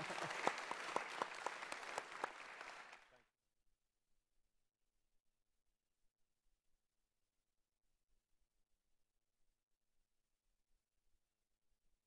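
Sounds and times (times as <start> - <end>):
laughter: 0.0 - 1.0
man saying thank you: 0.0 - 1.2
audience applauding: 0.0 - 3.2.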